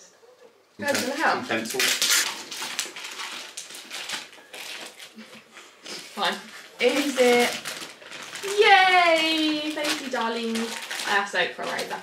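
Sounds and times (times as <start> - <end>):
gift packaging crinkling: 0.8 - 12.0.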